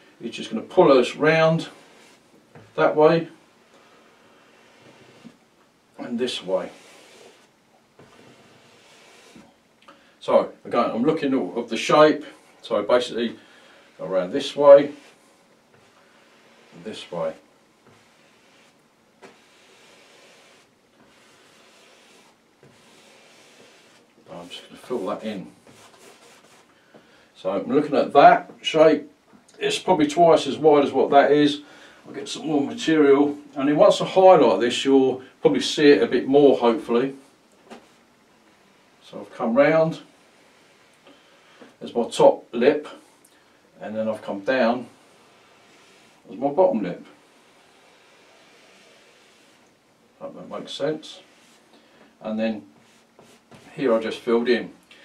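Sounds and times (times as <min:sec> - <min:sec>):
faint steady hiss: 0:00.0 - 0:55.0
paintbrush scratching on canvas: 0:00.7 - 0:05.4, 0:06.2 - 0:09.6, 0:13.9 - 0:26.7, 0:36.5 - 0:42.2, 0:43.9 - 0:51.7, 0:52.3 - 0:54.6.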